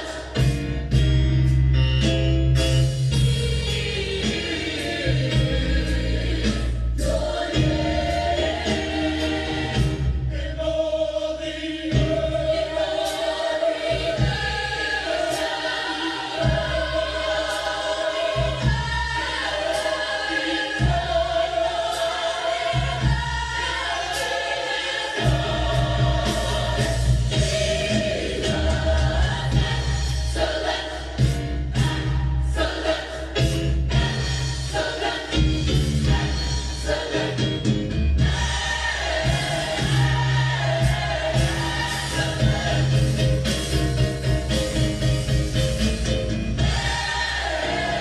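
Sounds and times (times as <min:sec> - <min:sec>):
choir singing held notes: 0:00.0 - 0:00.6, 0:03.3 - 0:44.7, 0:46.6 - 0:48.0
instrumental backing with deep bass: 0:00.0 - 0:24.4, 0:25.0 - 0:48.0.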